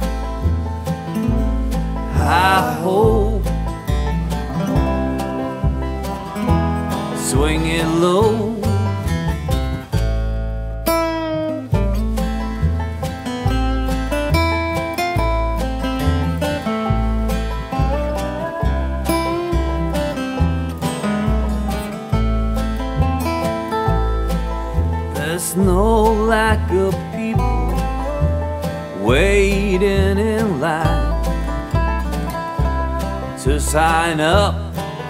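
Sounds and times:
bluegrass band playing: 0:00.0 - 0:35.0
dobro lead: 0:00.0 - 0:35.0
plucked upright bass: 0:00.0 - 0:35.0.

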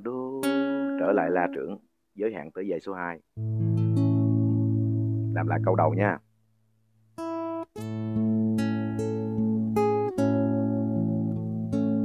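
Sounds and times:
nylon-string guitar picking: 0:00.0 - 0:01.8, 0:03.4 - 0:06.1, 0:07.2 - 0:12.0.

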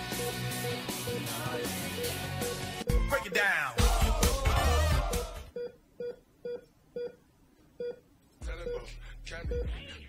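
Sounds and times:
music: 0:00.0 - 0:05.5, 0:08.4 - 0:10.0.

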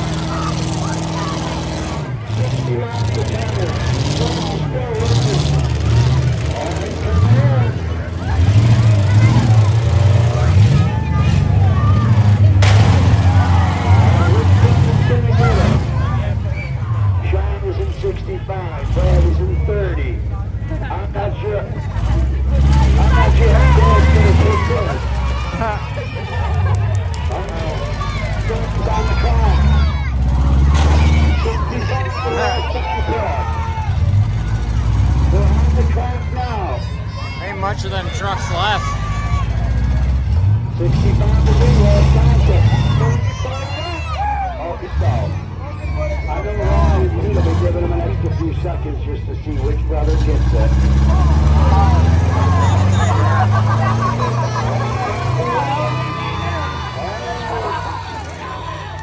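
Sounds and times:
crowd talking: 0:00.0 - 0:59.0
truck engines rumbling: 0:00.0 - 0:59.0.

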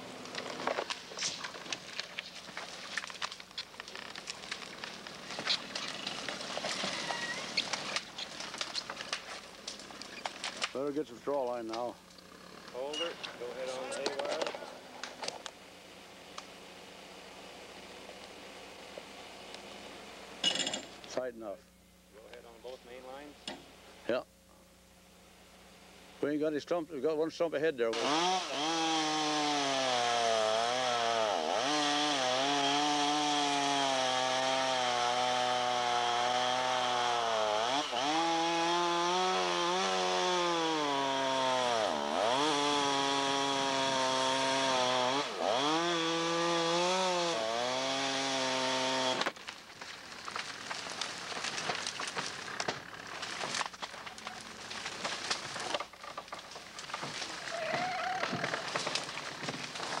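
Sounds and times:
rustling and handling noise: 0:00.2 - 0:10.8.

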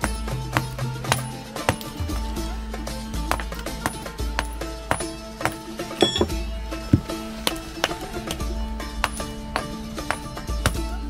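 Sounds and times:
hammer chipping stone: 0:00.0 - 0:02.4, 0:03.3 - 0:06.3, 0:09.0 - 0:10.9.

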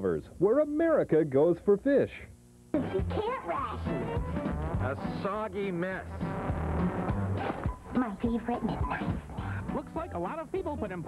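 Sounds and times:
background music with bass and drums: 0:03.8 - 0:07.9.

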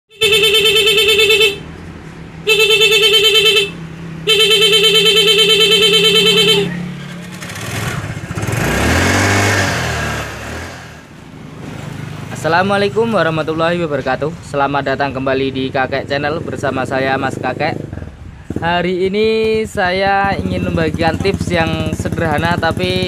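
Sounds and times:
stuttering motorcycle horn: 0:00.1 - 0:01.7, 0:02.4 - 0:09.5.

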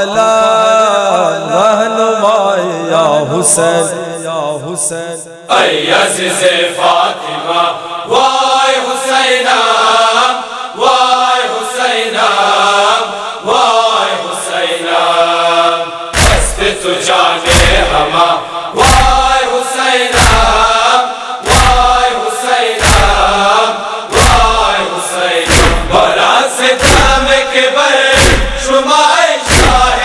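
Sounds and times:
voices chanting a lament: 0:00.0 - 0:30.0
heavy deep thump: 0:16.2 - 0:16.8, 0:17.5 - 0:18.1, 0:18.8 - 0:19.4, 0:20.2 - 0:20.7, 0:21.5 - 0:22.0, 0:22.8 - 0:23.4, 0:24.2 - 0:24.7, 0:25.5 - 0:26.1, 0:26.8 - 0:27.4, 0:28.2 - 0:28.7, 0:29.5 - 0:30.0.

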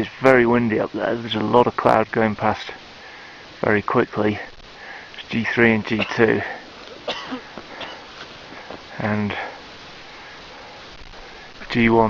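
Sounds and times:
faint steady hiss: 0:00.0 - 0:12.0
person breathing: 0:03.0 - 0:03.6, 0:04.7 - 0:05.2, 0:06.4 - 0:11.6.

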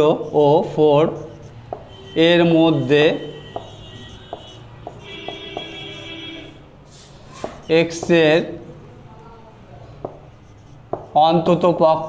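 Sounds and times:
marker writing on whiteboard: 0:00.0 - 0:08.8, 0:09.9 - 0:12.0
pen tip ticking on board: 0:03.6 - 0:05.8.

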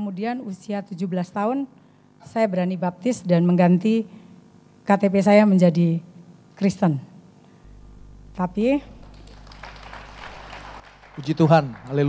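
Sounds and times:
soft audience applause: 0:09.0 - 0:12.0.

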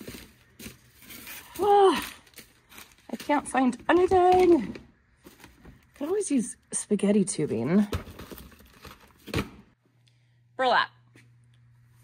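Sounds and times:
plastic rustling: 0:00.0 - 0:06.3.

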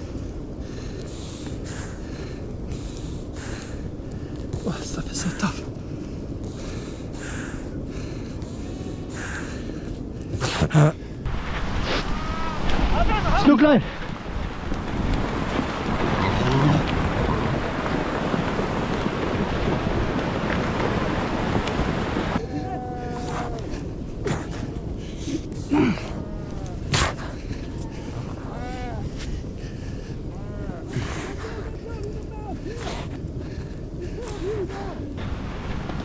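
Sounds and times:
wind rumble on microphone: 0:00.0 - 0:36.0
seal breathing hard: 0:05.8 - 0:11.3, 0:26.8 - 0:31.8.

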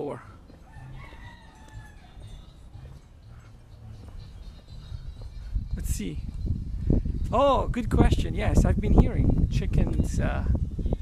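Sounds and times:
faint rooster crowing: 0:00.3 - 0:02.7.

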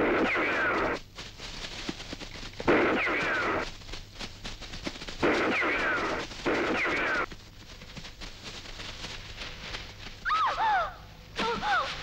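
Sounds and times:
faint rustling: 0:00.0 - 0:10.6, 0:11.2 - 0:12.0
high whimpering cries: 0:10.3 - 0:12.0.

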